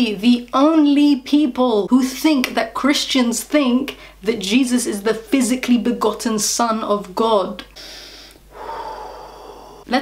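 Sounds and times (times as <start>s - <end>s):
woman's intake of breath: 7.8s - 9.9s
woman sighing: 8.2s - 9.9s.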